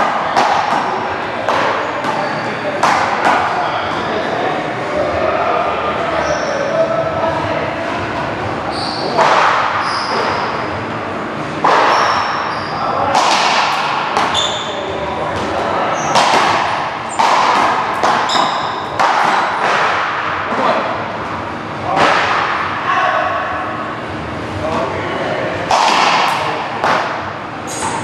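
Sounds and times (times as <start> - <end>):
ball cracked by paddles: 13.1 - 14.7, 15.4 - 20.2, 25.7 - 27.2
ball slapping wall: 15.4 - 20.2.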